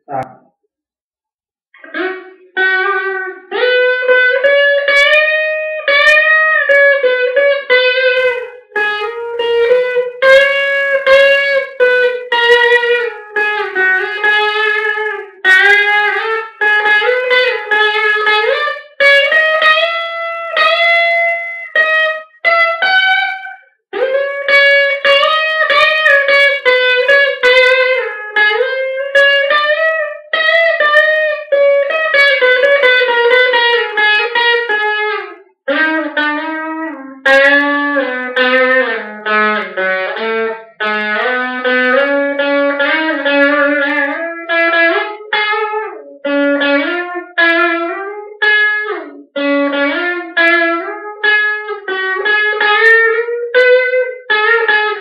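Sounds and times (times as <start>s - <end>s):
electric guitar lead melody: 1.8s - 55.0s.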